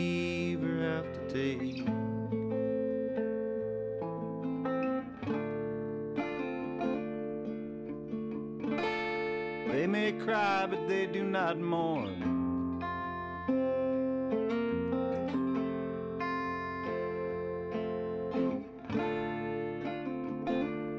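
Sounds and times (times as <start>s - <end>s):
man singing: 0.0s - 2.2s, 9.6s - 12.4s
archtop guitar picked: 0.0s - 20.9s.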